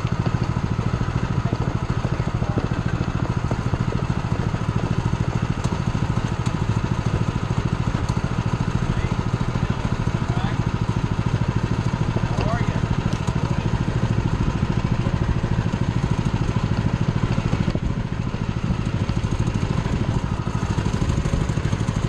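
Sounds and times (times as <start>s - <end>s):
small engine running: 0.0s - 22.0s.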